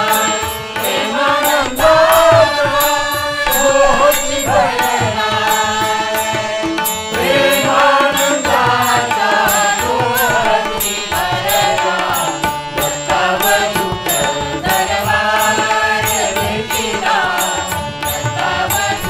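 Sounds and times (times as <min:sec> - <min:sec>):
hand drum steady beat: 0:00.0 - 0:19.0
harmonium: 0:00.0 - 0:19.0
tabla: 0:00.0 - 0:19.0
gliding melody line: 0:01.4 - 0:06.0.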